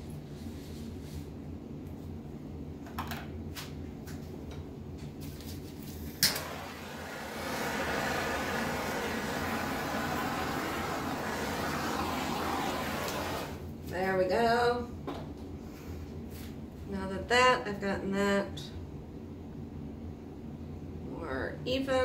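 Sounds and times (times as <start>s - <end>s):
torch igniter click: 6.2s - 6.5s
torch flame hissing: 6.2s - 13.7s.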